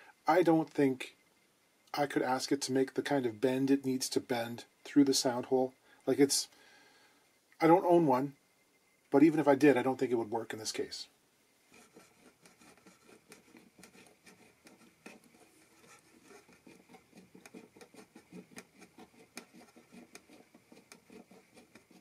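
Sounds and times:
hand drill scratchy ticking: 0:11.7 - 0:22.0.

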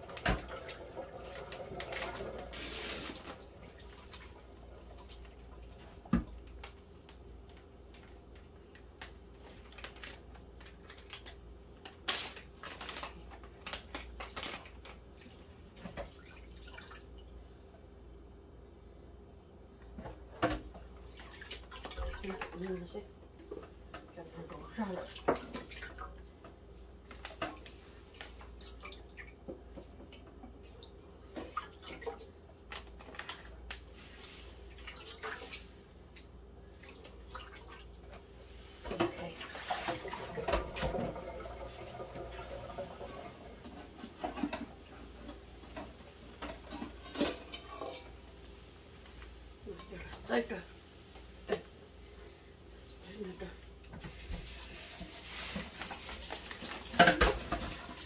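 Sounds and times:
water splashing in sink: 0:00.0 - 0:17.8, 0:20.2 - 0:48.5, 0:53.8 - 0:58.0
dishes clinking and knocking: 0:56.9 - 0:57.8.

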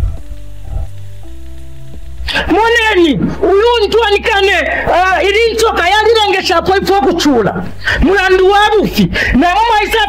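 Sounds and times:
faint hiss: 0:00.0 - 0:10.0
soft background music: 0:00.0 - 0:10.0.

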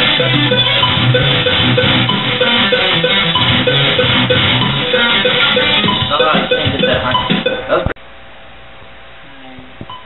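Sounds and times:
electric guitar picking: 0:00.0 - 0:07.9.

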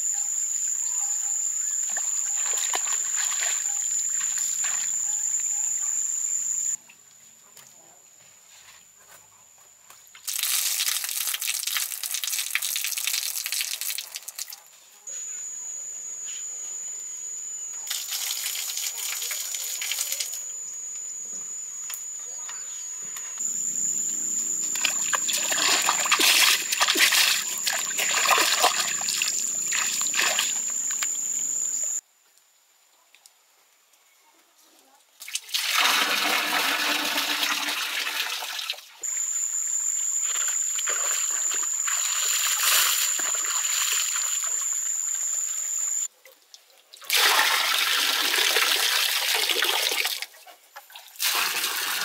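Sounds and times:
broom sweeping earth floor: 0:01.9 - 0:05.4, 0:08.2 - 0:09.3, 0:14.8 - 0:15.4, 0:40.2 - 0:44.6
steady high-pitched whine: 0:15.1 - 0:32.0, 0:39.0 - 0:46.1
water splashing: 0:24.6 - 0:31.5.

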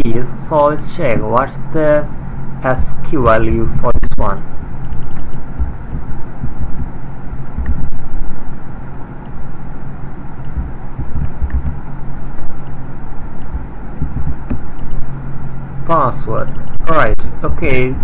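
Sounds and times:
low background rumble: 0:00.0 - 0:18.0
mains hum: 0:00.0 - 0:18.0
uneven low thumps: 0:05.4 - 0:08.5, 0:10.4 - 0:12.6, 0:13.5 - 0:15.1.

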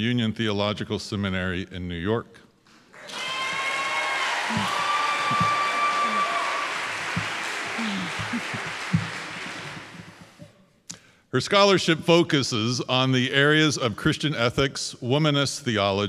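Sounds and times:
audience applauding: 0:03.0 - 0:10.4.

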